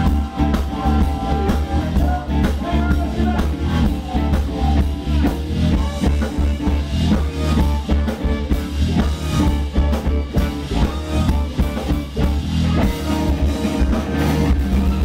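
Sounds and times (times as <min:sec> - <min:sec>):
live funk band playing: 0:00.0 - 0:15.0.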